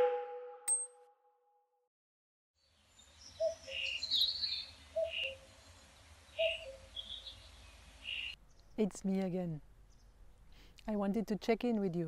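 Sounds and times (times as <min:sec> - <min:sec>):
bird chirps: 0:02.6 - 0:08.8
bird calling: 0:03.3 - 0:05.5, 0:06.4 - 0:08.4.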